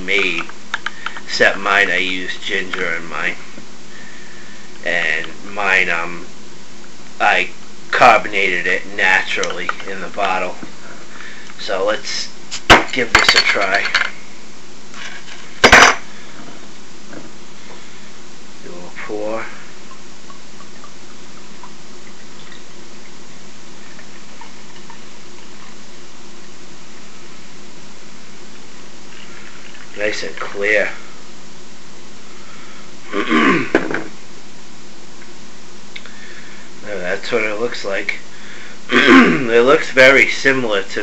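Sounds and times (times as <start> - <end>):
liquid pouring into glass: 19.8 - 25.8
bottle set down on table: 33.7 - 34.1.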